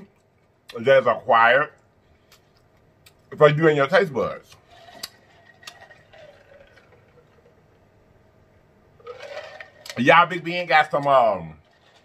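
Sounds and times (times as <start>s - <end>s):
man drinking from a jug: 4.6s - 7.8s.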